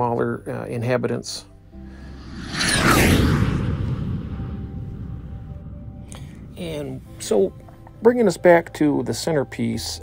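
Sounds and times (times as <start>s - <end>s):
falling whoosh: 1.8s - 7.3s
deep boom with low rumble: 2.8s - 8.0s.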